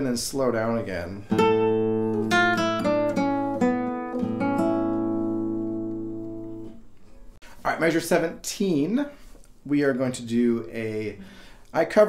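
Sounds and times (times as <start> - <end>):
classical guitar fingerstyle: 1.3 - 7.3.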